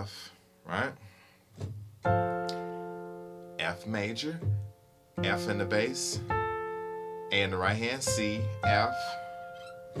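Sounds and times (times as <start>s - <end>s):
piano chord ringing: 2.0s - 10.0s.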